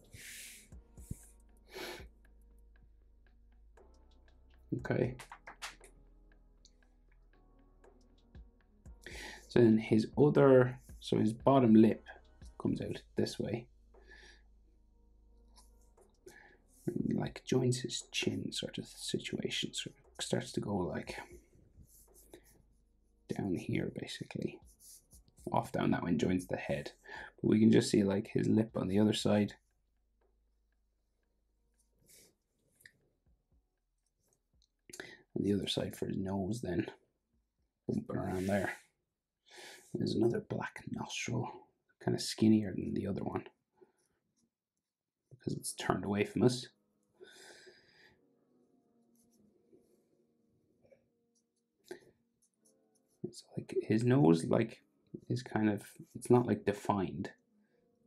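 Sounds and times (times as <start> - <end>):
marker drawing on paper: 0.0 - 1.4, 21.1 - 22.8, 24.6 - 25.5, 38.2 - 38.9, 49.2 - 49.4, 52.4 - 53.4.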